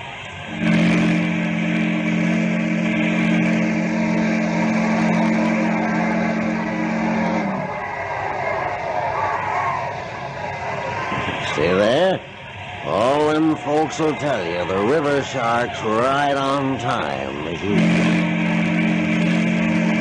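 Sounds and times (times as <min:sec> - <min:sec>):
steam whistle blast: 0:00.0 - 0:10.0, 0:17.5 - 0:20.0.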